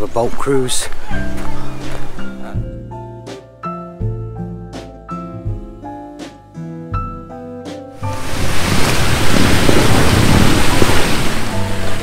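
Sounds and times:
faint background music: 0:00.0 - 0:07.3
loud steady rushing noise: 0:08.0 - 0:12.0.

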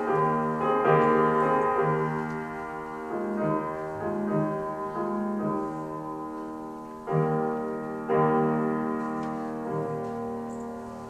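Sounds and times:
slow classical piano: 0:00.0 - 0:11.0.

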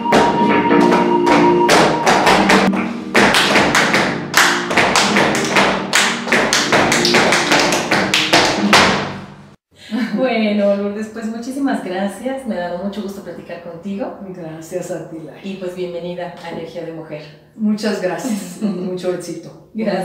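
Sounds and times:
sharp rhythmic percussive strikes: 0:00.0 - 0:09.5
flamenco music: 0:00.0 - 0:09.6.

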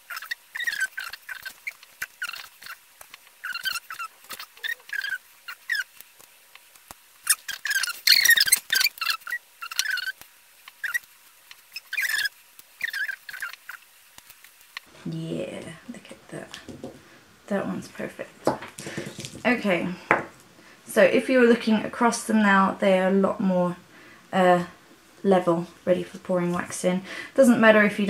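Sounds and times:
shells scraping and ticking: 0:00.0 - 0:14.9.

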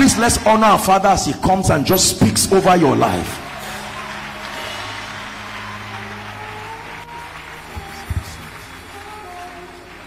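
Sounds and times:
congregation applauding: 0:00.0 - 0:10.0
soft background music: 0:00.0 - 0:10.0.

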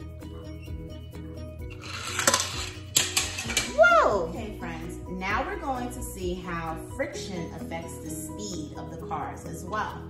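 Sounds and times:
background music: 0:00.0 - 0:10.0
toy car rolling on wood: 0:01.7 - 0:03.8.

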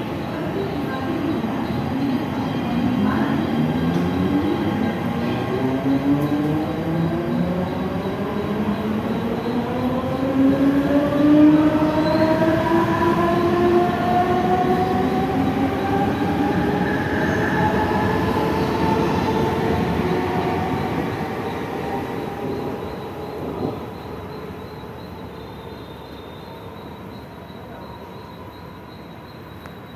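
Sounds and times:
wheels rumbling on rail: 0:00.0 - 0:29.9.

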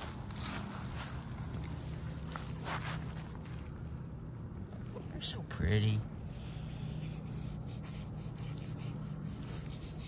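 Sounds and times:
rustling in dry hay: 0:00.0 - 0:03.9.

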